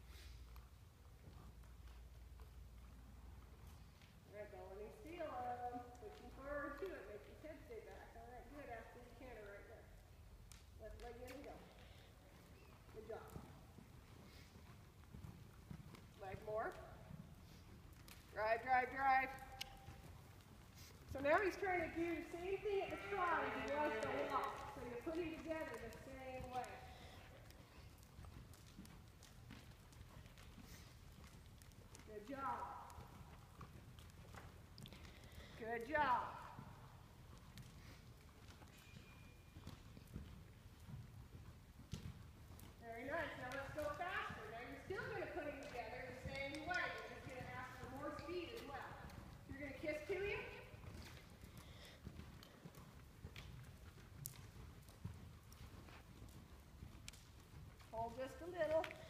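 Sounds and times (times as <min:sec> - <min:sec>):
horse hoofbeats trotting on dirt: 0:00.0 - 0:59.0.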